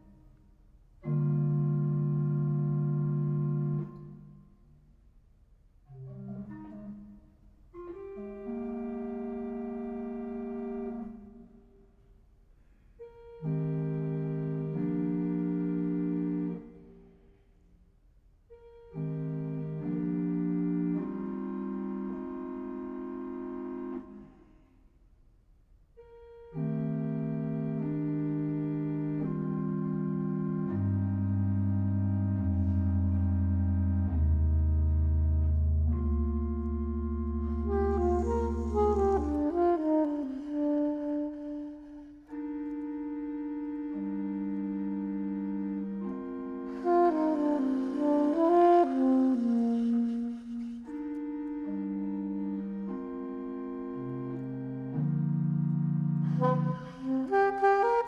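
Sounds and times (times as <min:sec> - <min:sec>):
organ chords: 0:18.7 - 0:24.3, 0:26.4 - 0:41.0, 0:50.9 - 0:57.4
saxophone phrase: 0:35.9 - 0:44.3, 0:46.0 - 0:54.4, 0:56.2 - 0:58.0.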